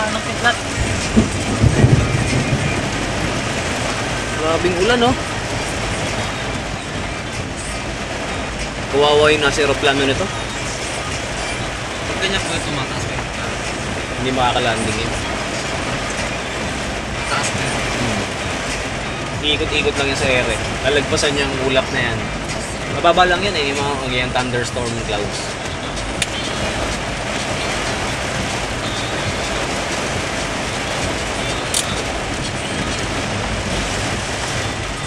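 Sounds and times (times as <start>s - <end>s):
engine and road rumble: 0.0s - 35.0s
heavy rain on vehicle roof: 0.0s - 35.0s
low thumps: 0.0s - 35.0s.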